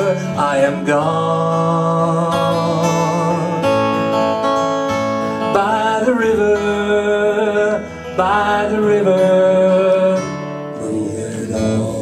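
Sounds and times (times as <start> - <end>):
acoustic guitar strumming: 0.0 - 12.0
sustained melody line: 0.0 - 12.0.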